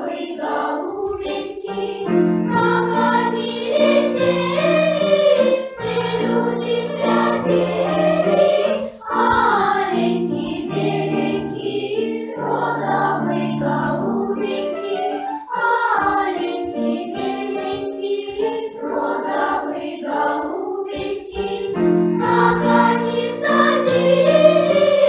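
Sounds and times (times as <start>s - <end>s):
children's choir singing folk song: 0.0s - 25.0s.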